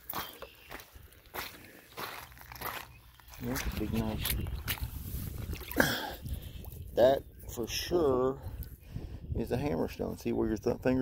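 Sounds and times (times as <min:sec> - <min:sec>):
wind rumble on microphone: 0:03.4 - 0:11.0.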